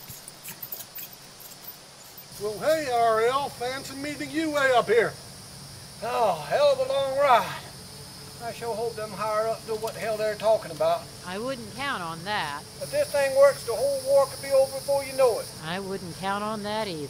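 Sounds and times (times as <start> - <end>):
insects hissing: 0.0 - 17.0
man speaking: 2.4 - 5.2, 6.0 - 7.7, 8.4 - 11.1, 12.8 - 15.5.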